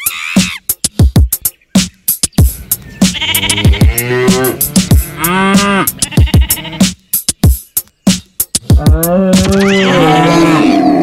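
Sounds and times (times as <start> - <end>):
children's music with kick drum: 0.4 - 9.7
sheep bleating: 3.0 - 7.0, 8.8 - 11.0.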